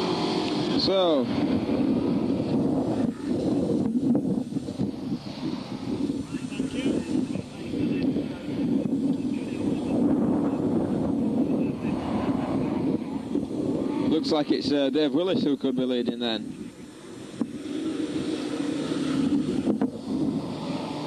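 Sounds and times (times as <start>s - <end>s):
stock car engines racing: 0.0s - 21.0s.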